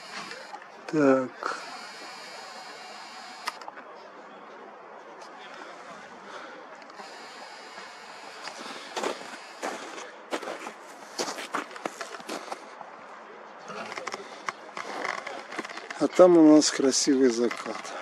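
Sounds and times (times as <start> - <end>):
outdoor background hiss: 0.0 - 18.0.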